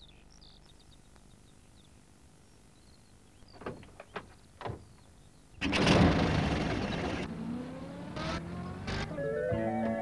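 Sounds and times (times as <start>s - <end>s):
van engine starting and pulling away: 5.6s - 10.0s.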